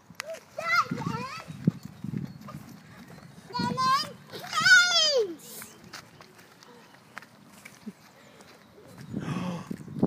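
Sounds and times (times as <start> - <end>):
running footsteps on dirt: 0.0 - 10.0.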